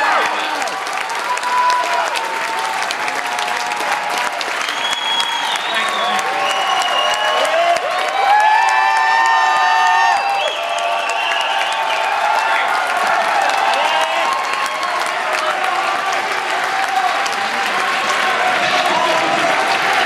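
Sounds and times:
crowd applauding: 0.0s - 20.0s
crowd cheering and shouting: 0.0s - 20.0s.

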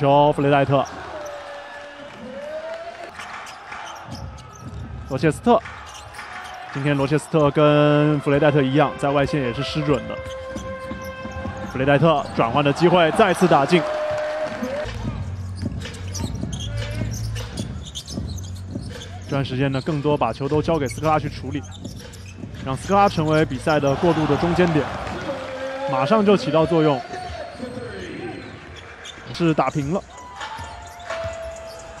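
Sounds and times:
basketball play on court: 0.0s - 32.0s
crowd noise: 0.0s - 32.0s.

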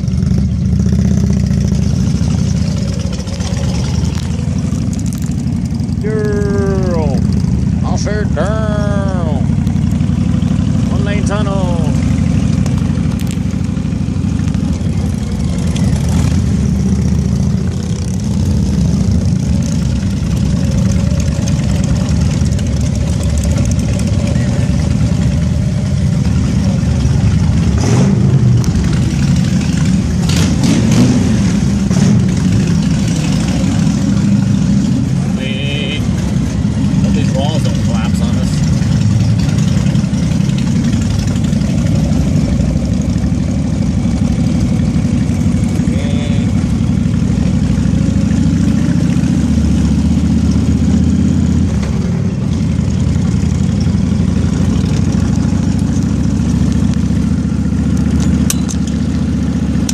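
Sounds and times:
road and wind noise: 0.0s - 59.9s
vehicle engine rumble: 0.0s - 59.9s.

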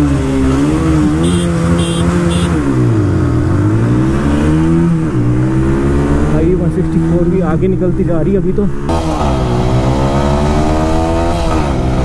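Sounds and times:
motorcycle engine revving: 0.0s - 7.6s, 8.7s - 12.0s.

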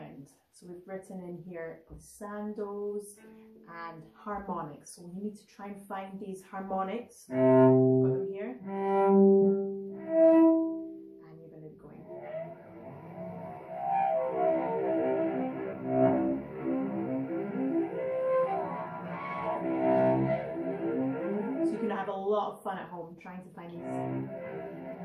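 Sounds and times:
bowed cello harmonics: 2.0s - 5.0s, 6.4s - 25.0s.

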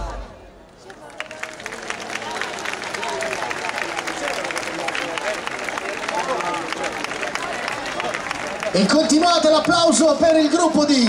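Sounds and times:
audience applauding: 0.7s - 11.0s.

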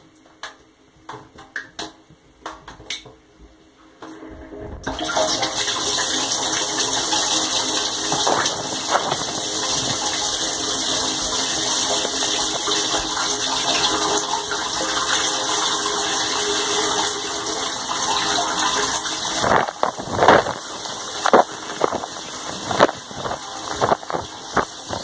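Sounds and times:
faint pump motor hum: 0.0s - 25.0s
water churning in dishwasher: 4.2s - 25.0s
water splashing across tub: 4.8s - 25.0s.

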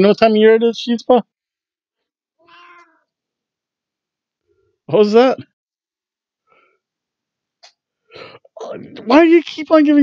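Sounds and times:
cat meowing: 2.4s - 3.0s.

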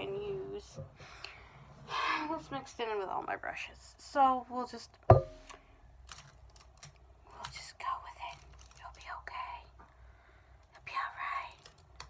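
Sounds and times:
person whispering: 7.3s - 9.8s, 10.7s - 11.8s.

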